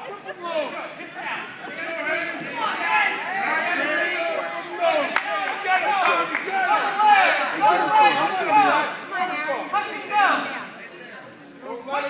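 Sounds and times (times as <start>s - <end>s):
spectators shouting: 0.4s - 10.6s.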